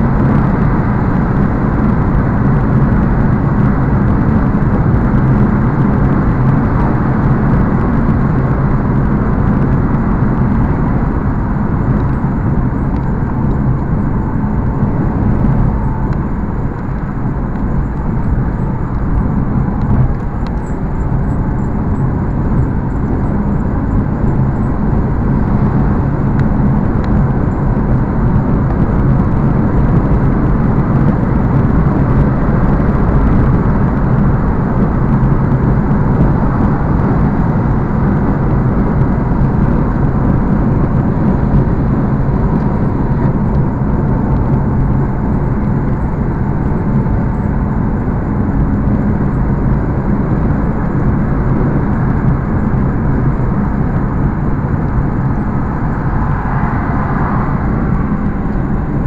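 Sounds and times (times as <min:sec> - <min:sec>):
car engine drone: 0:00.0 - 0:59.0.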